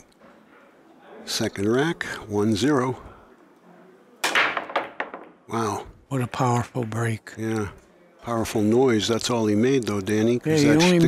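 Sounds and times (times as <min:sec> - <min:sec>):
pool break shot crack: 0:04.2 - 0:05.4
pool balls clicking: 0:04.2 - 0:05.6.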